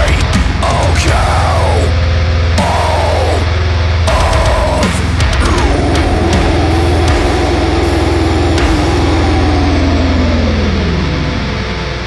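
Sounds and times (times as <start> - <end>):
dense low rumble: 0.0 - 12.0
distorted low guitar tone: 0.0 - 12.0.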